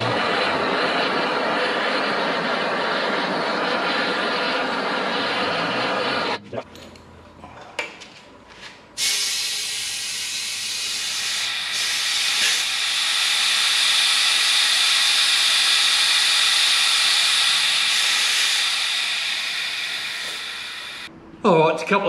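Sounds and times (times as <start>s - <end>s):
compressed air hissing: 0.0s - 6.4s, 9.0s - 21.1s.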